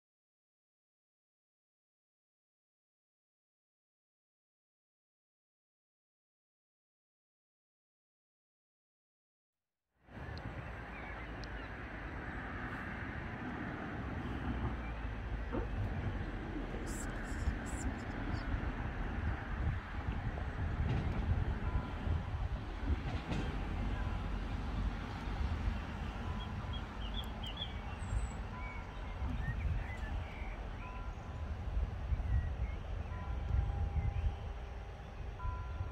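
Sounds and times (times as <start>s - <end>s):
wind buffeting microphone: 10.1s - 35.9s.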